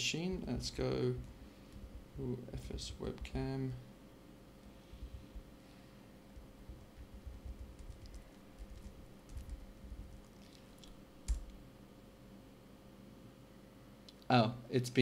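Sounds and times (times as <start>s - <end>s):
laptop keyboard typing: 6.4s - 10.6s, 11.3s - 11.6s.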